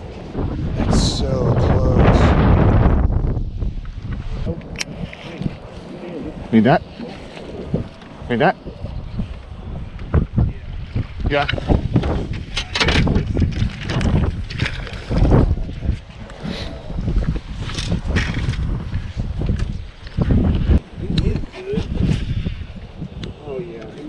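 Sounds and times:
wind buffeting microphone: 0.0 - 24.0.

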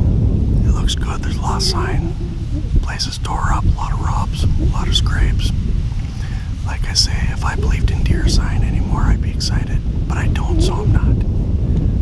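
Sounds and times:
wind rumble on microphone: 0.0 - 12.0
man whispering: 0.6 - 11.2.

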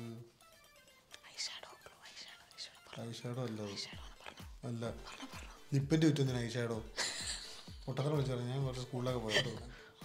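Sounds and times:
person whispering: 1.1 - 5.7.

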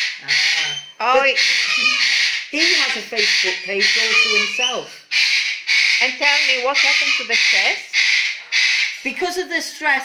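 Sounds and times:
cockatoo screeching: 0.0 - 9.1.

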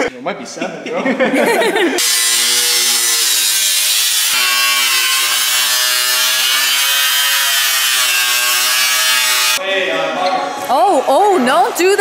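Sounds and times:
angle grinder cutting metal: 2.0 - 9.6.

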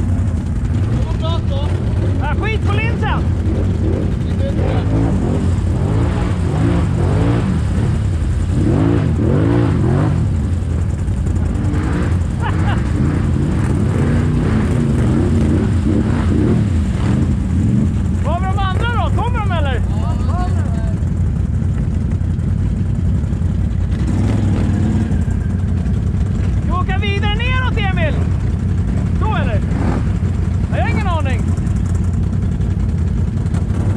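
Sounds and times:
engine running at low revs: 0.0 - 33.9.

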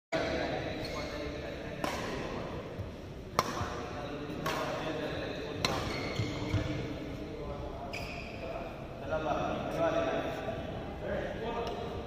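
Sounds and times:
racket hitting shuttlecock: 1.8 - 2.4, 3.3 - 4.8, 5.6 - 6.7.

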